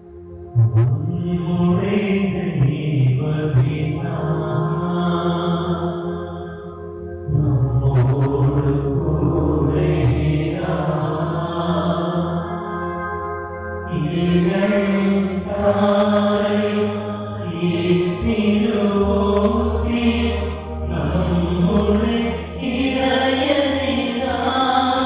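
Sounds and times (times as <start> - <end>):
sustained drone: 0.0 - 12.5, 13.9 - 25.0
slow chant-like devotional music: 0.0 - 25.0.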